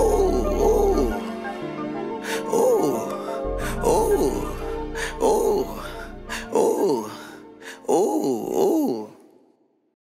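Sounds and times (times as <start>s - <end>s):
wailing vocal hook: 0.0s - 1.3s, 2.4s - 9.2s.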